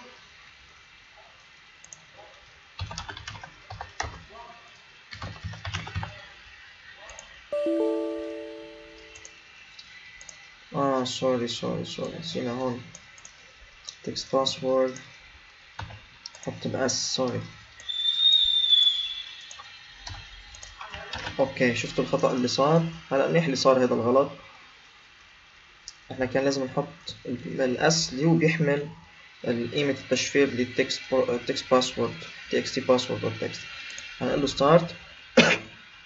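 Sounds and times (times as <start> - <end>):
faint clicks: 1.8 - 2.1, 9.2 - 10.5, 15.8 - 16.6
typing on computer keyboard: 2.8 - 4.3, 5.1 - 6.2
high whistle-like tone: 7.5 - 9.2, 17.8 - 19.5.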